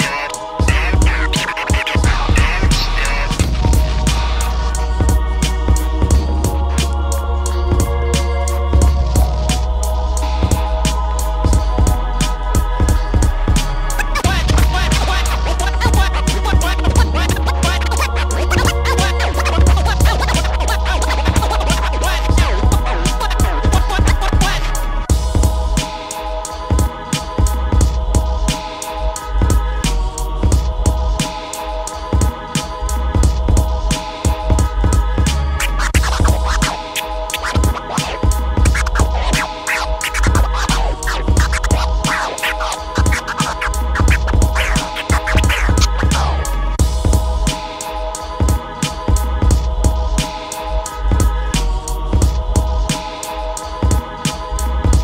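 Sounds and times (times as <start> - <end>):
vinyl scratching: 0.0 - 5.6, 13.6 - 25.0, 33.9 - 47.6
hip-hop beat with bass line: 0.0 - 55.0.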